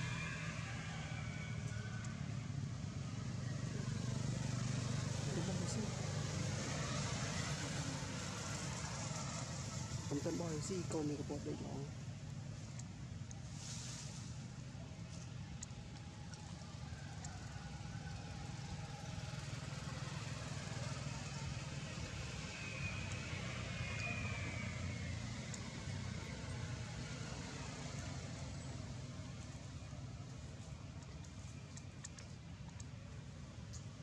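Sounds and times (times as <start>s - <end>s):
low engine-like rumble: 0.0s - 34.0s.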